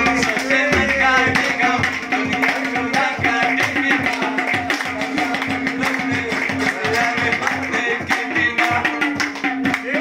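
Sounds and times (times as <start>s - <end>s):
hand claps: 0.0s - 10.0s
tabla strokes: 0.0s - 10.0s.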